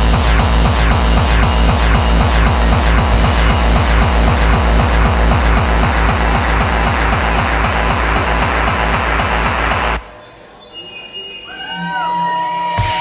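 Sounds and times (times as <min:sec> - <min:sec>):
heavy kick drum: 0:00.0 - 0:10.0
fast electronic breakcore beat: 0:00.0 - 0:13.0.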